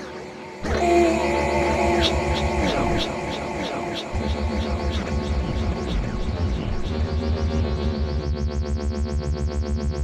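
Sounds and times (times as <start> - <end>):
held synth notes: 0.0 - 8.7
falling pitch sweeps: 0.4 - 7.6
electronic grime beat: 0.6 - 10.0
pulsing bass: 0.6 - 10.0.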